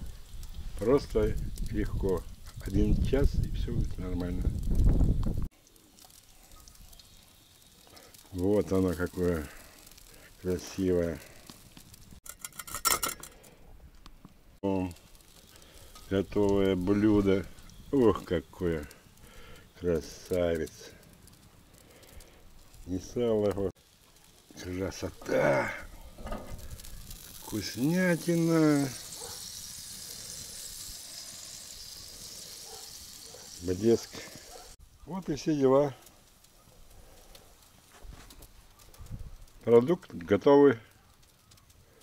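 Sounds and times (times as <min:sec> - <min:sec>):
pork fat crackling and sizzling: 0:00.0 - 0:42.0.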